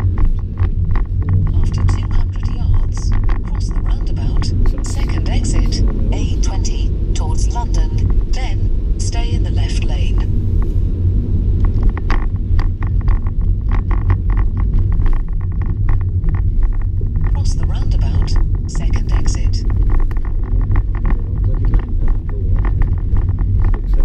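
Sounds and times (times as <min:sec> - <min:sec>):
car engine drone: 0:00.0 - 0:24.0
indistinct voice talking: 0:01.5 - 0:10.3, 0:17.3 - 0:19.8, 0:21.0 - 0:22.8.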